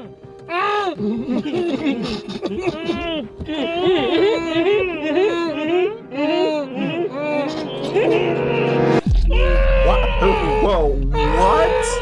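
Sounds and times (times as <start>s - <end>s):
groaning and screaming voices: 0.5s - 12.0s
men laughing: 1.0s - 9.0s
bass drop rumble: 9.1s - 10.2s.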